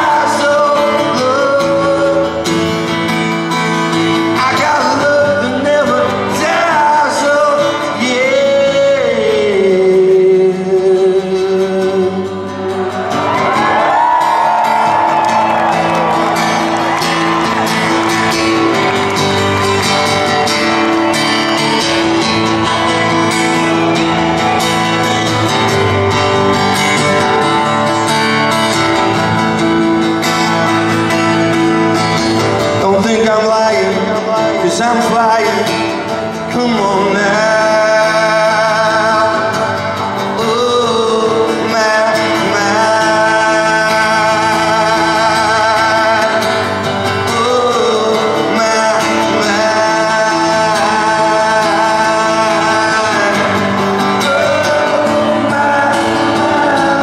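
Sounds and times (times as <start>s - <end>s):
man singing: 0.0s - 13.6s, 31.9s - 57.0s
strummed acoustic guitar: 0.0s - 57.0s.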